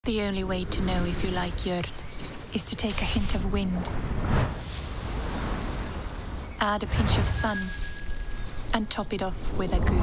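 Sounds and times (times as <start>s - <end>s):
wind gusting: 0.1s - 10.0s.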